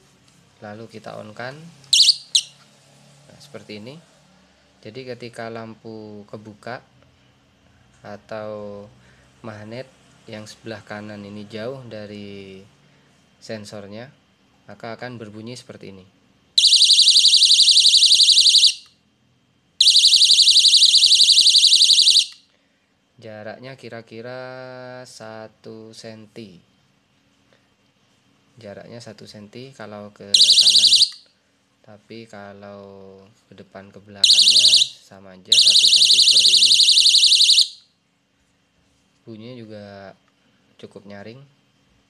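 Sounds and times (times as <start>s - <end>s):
warbling alarm beep: 2.0s - 2.5s, 16.6s - 18.8s, 19.8s - 22.4s, 30.4s - 31.2s, 34.2s - 37.8s.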